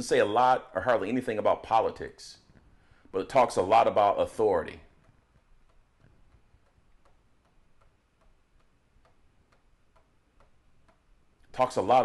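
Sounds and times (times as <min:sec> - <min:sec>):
faint regular ticking: 0:02.4 - 0:12.0.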